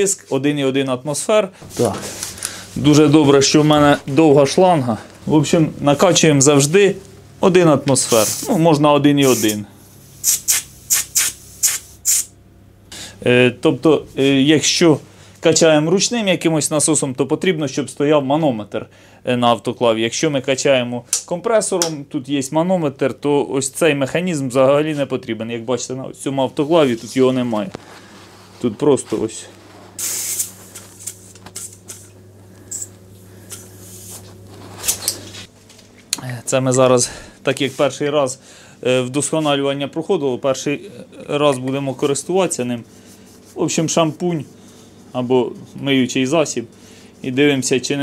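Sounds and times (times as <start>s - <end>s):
steady low hum: 0.0s - 48.0s
compressed air hisses: 8.1s - 8.6s, 9.2s - 12.3s, 30.0s - 32.1s, 32.7s - 34.3s.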